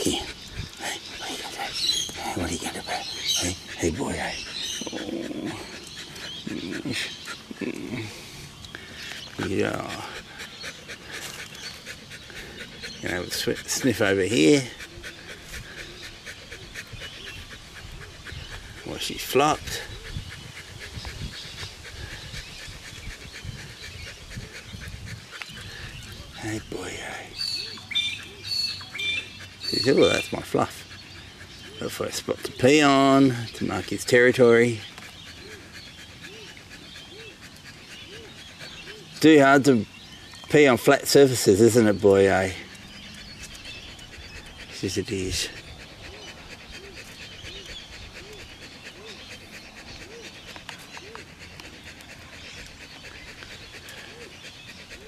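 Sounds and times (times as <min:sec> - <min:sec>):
dog panting: 0:00.0 - 0:55.0
dog whimpering: 0:02.9 - 0:08.2, 0:45.7 - 0:55.0.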